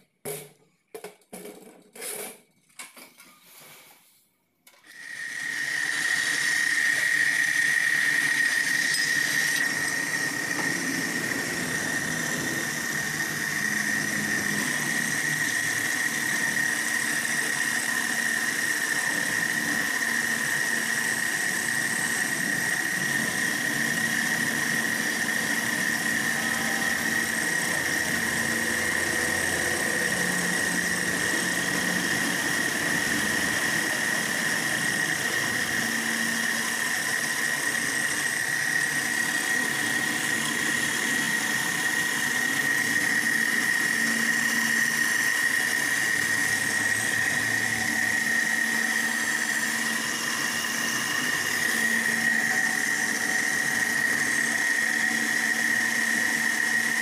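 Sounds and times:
machine running noise: 4.8 - 57.0
end mill cutting metal whine: 4.9 - 57.0.

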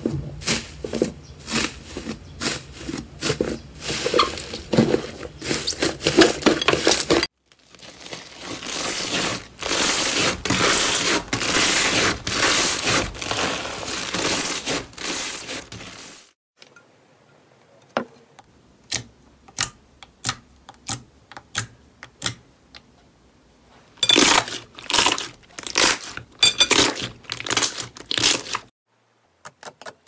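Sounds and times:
foam slime crunching: 0.4 - 16.3, 24.1 - 28.7
foil crinkling under fingers: 1.5 - 16.3, 24.5 - 28.7.

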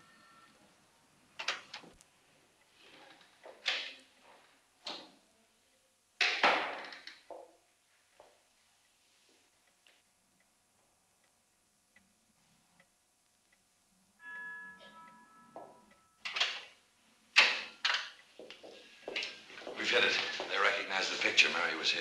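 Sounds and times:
ringing tone: 0.0 - 0.6, 14.2 - 16.3
person speaking: 19.5 - 22.0.

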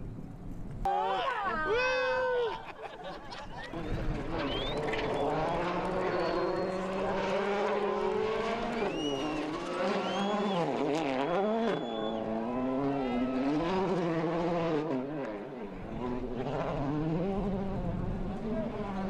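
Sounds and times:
rally car engine at speed: 3.3 - 19.0.

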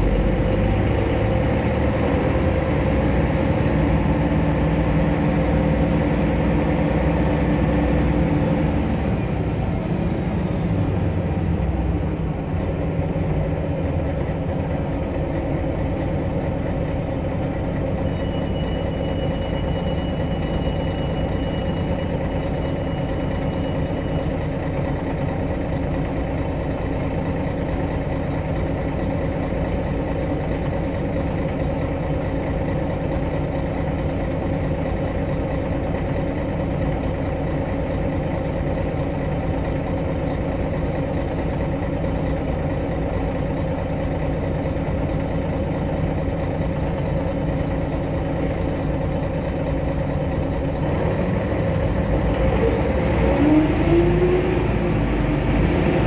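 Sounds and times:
bus engine idling and revving: 0.0 - 56.0.

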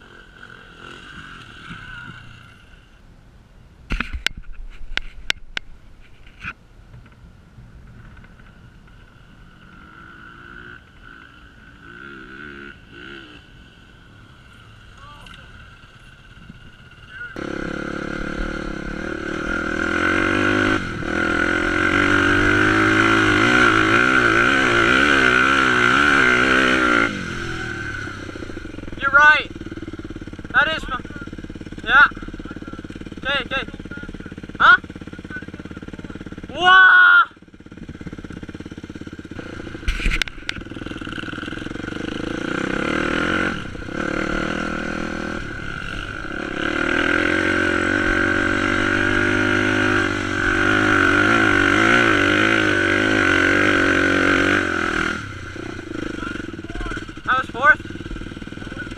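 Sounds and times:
dirt bike engine revving: 0.0 - 3.0, 8.1 - 58.9.

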